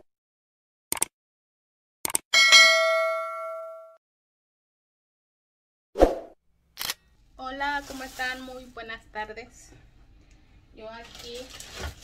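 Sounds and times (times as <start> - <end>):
short clicks: 0.9 - 1.1, 2.0 - 2.2
bell ding: 2.4 - 4.0.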